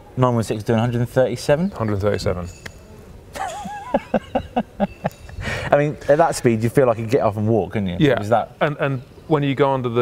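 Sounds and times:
man laughing: 3.3 - 5.7.

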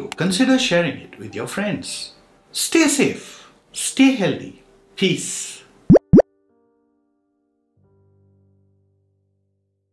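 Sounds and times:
cartoon bloop pops: 5.9 - 6.2.

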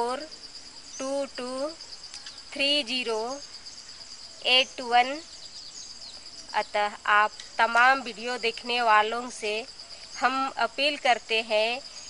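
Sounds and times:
crickets chirring: 0.0 - 12.0
woman speaking: 1.0 - 1.8, 2.6 - 3.4, 4.4 - 5.2, 6.6 - 11.8.

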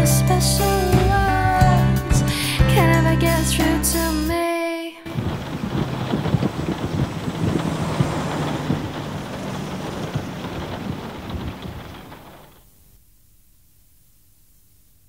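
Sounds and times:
rumbling crackling noise effect: 5.1 - 13.0.

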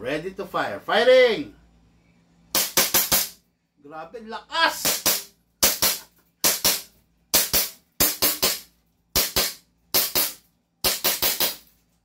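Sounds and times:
airsoft pistol shots: 2.5 - 3.4, 4.8 - 11.6.

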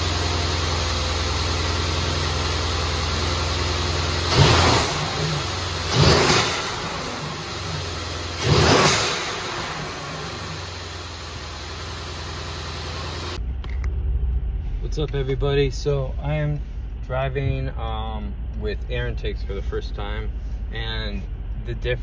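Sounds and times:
car engine idling and revving: 0.0 - 22.0.

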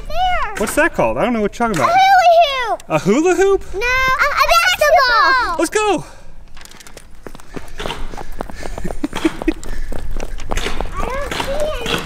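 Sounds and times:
fast running footsteps: 6.9 - 12.0
person laughing: 8.5 - 10.0.

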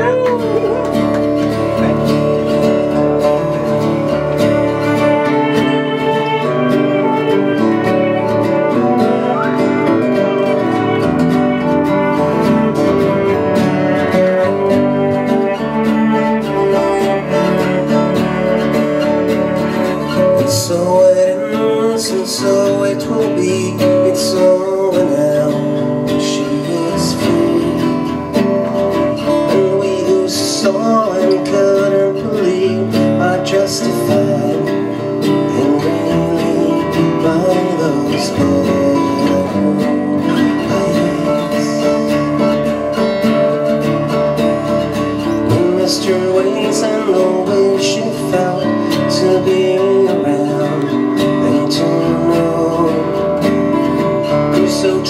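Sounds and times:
keyboard playing: 0.0 - 21.7
acoustic guitars strummed: 0.0 - 55.0.

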